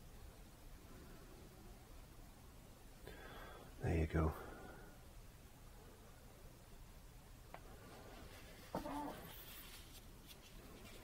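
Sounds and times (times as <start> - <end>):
brush scratching on canvas: 7.7 - 11.0.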